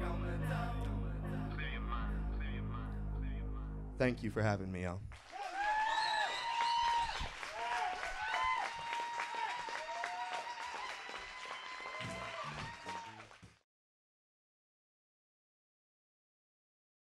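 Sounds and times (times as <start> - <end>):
audience clapping: 5.1 - 13.6
audience cheering: 5.2 - 13.4
pitched whoops: 5.3 - 13.2.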